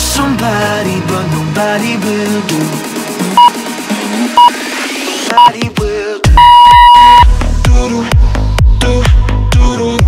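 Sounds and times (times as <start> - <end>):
timer beeps: 3.4 - 3.6, 4.4 - 4.6, 6.4 - 7.3.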